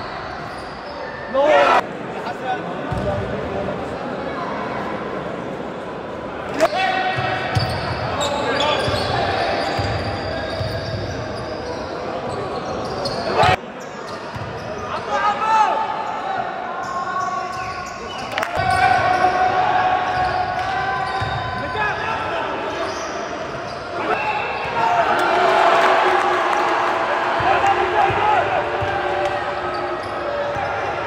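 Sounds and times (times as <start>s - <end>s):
murmur of spectators: 0.0s - 31.0s.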